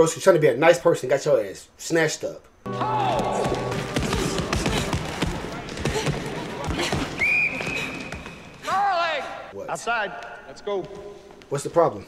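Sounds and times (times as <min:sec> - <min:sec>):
indistinct voices: 0:02.7 - 0:09.5.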